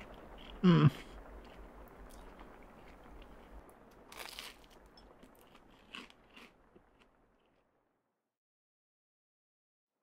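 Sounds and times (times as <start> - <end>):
crunchy bites and chewing: 0.0 - 7.7.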